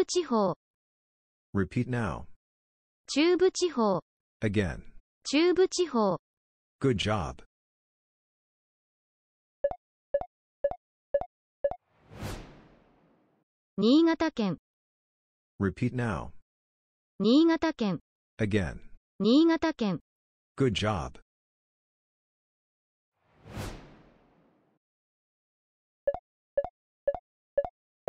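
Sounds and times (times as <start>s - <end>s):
transition whoosh: 12.0s - 13.3s, 23.3s - 24.7s.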